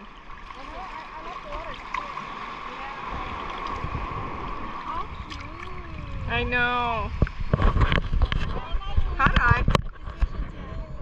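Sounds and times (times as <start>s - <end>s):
sea water splashing: 0.0s - 10.5s
low rumble of moving water: 0.0s - 11.0s.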